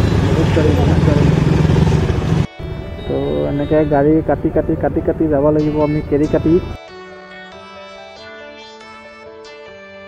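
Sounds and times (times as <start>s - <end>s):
motorcycle engine running: 0.0s - 3.0s
street traffic noise: 0.0s - 6.8s
quiet background music: 2.5s - 6.9s.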